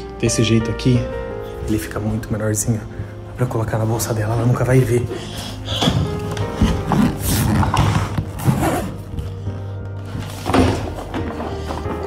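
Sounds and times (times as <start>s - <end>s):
background music: 0.0s - 12.0s
suitcase knocks and rustles: 10.0s - 12.0s.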